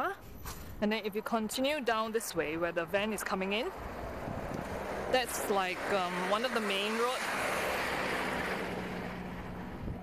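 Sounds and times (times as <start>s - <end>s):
van driving past: 3.6s - 10.0s.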